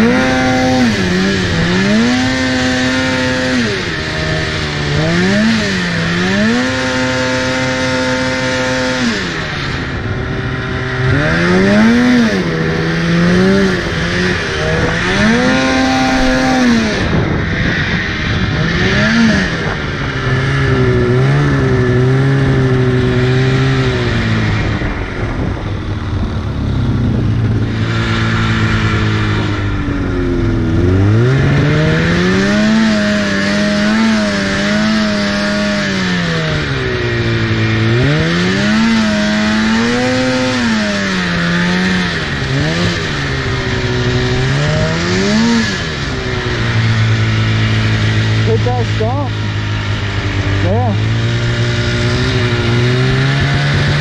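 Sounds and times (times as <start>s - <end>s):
snowmobile engine revving: 0.0s - 54.0s.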